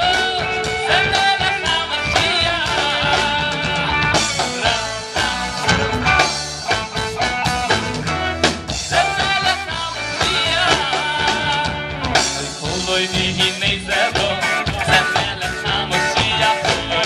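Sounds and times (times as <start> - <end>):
man singing: 0.0 - 6.3, 8.8 - 17.0
drum kit: 0.0 - 17.0
electric guitar: 0.0 - 17.0.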